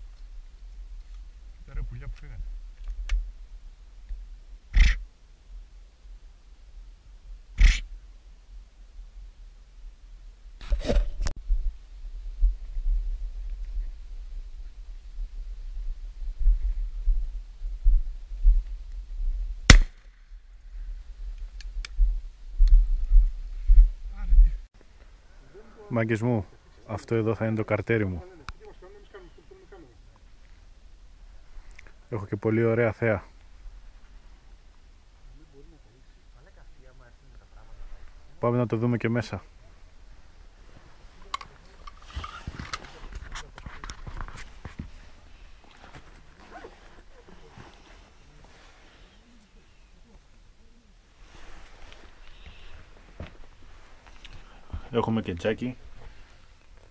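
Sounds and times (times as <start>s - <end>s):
low microphone rumble: 11.1s - 24.7s
footsteps on dirt floor: 22.0s - 24.6s, 51.3s - 54.9s.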